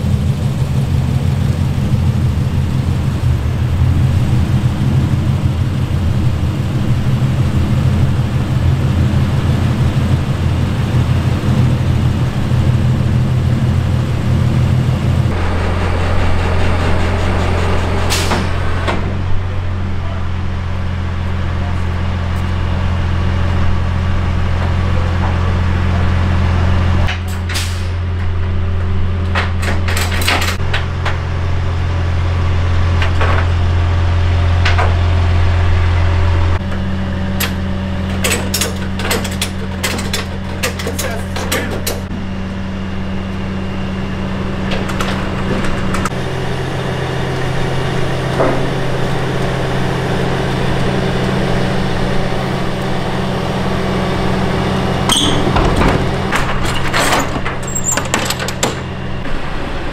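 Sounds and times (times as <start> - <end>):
truck engine droning: 0.0 - 59.9
metal clanks and knocks: 27.1 - 31.2, 37.4 - 42.2, 55.1 - 59.0.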